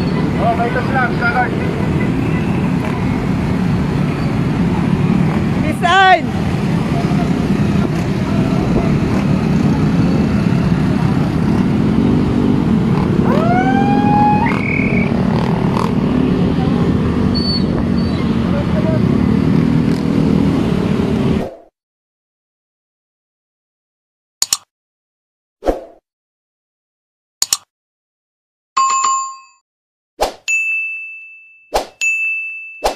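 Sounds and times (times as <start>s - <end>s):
motorcycle engines passing: 0.0s - 21.4s.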